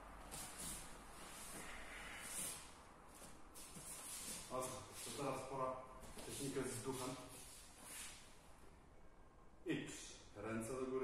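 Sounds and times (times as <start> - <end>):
bare feet shuffling on foam mats: 0.2 - 8.2
soft hissing swishes: 0.2 - 8.6.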